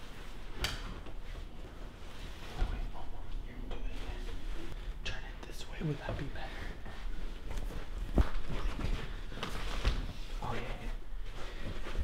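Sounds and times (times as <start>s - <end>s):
whispering voices: 2.5s - 4.4s.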